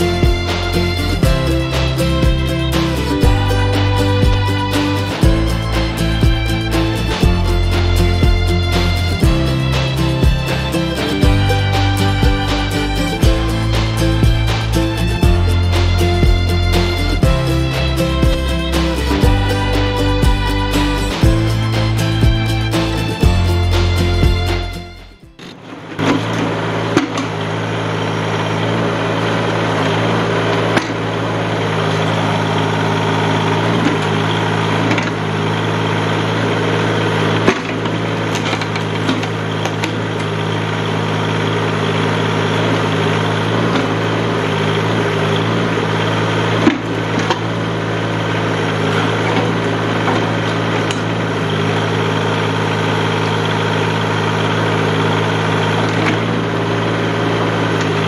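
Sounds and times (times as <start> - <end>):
tractor engine running: 0.0 - 58.0.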